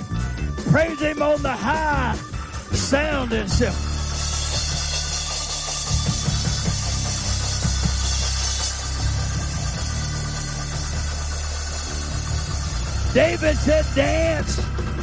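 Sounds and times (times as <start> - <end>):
church band music: 0.0 - 8.0, 8.8 - 15.0
heavy sustained bass notes: 0.0 - 15.0
cymbal wash: 2.0 - 15.0.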